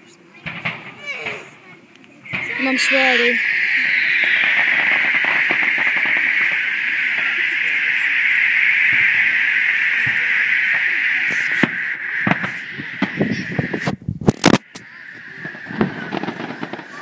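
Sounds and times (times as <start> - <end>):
crackling fireworks hiss: 0.0 - 17.0
firework bangs: 0.4 - 17.0.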